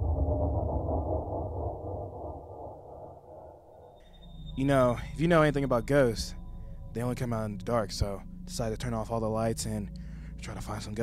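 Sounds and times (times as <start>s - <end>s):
deep muffled rumbling effect: 0.0s - 9.2s.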